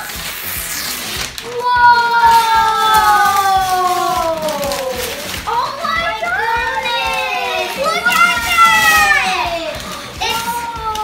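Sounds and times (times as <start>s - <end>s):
girls' wordless cries: 1.4s - 11.0s.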